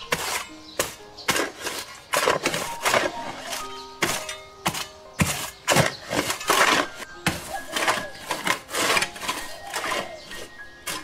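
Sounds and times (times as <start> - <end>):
hoe chopping stony soil: 0.0 - 11.0.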